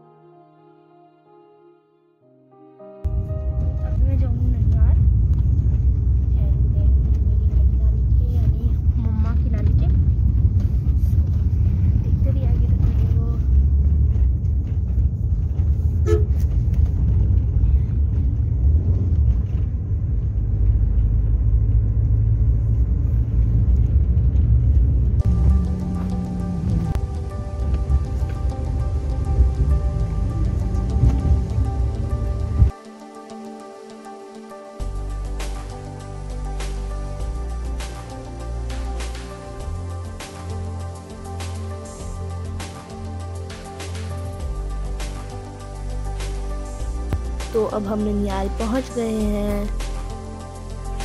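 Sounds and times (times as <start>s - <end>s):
background music: 0.0s - 23.7s, 24.6s - 51.0s
car road and engine rumble: 3.1s - 32.7s.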